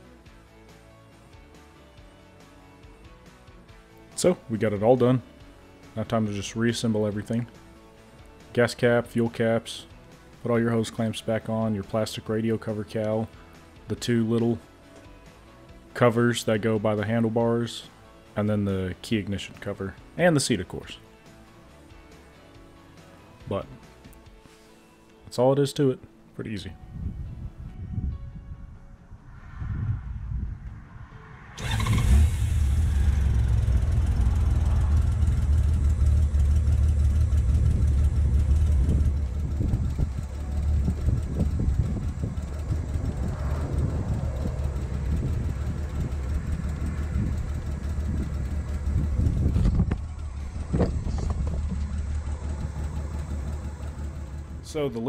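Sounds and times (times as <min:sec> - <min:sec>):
motorcycle engine starting and idling: 0:31.6 - 0:55.0.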